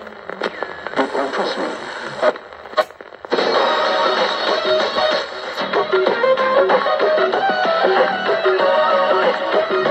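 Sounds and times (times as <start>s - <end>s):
radio broadcast speech: 0.0s - 2.6s
music from radio: 0.0s - 9.9s
radio static: 0.0s - 9.9s.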